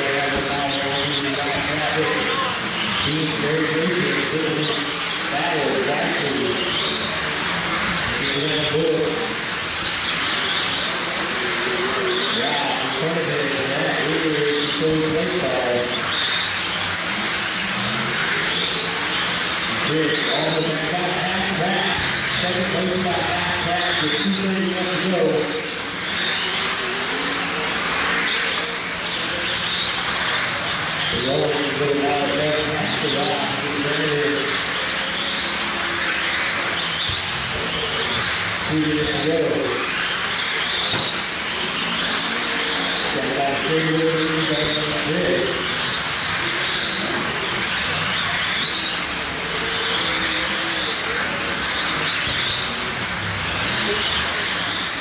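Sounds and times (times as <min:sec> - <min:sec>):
high-pitched model car motor whines: 0:00.0 - 0:55.0.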